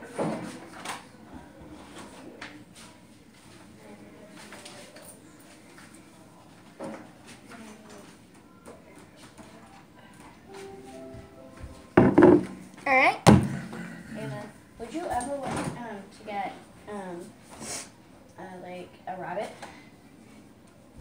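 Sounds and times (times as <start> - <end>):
bottles knocking on stone counter: 12.0 - 12.5.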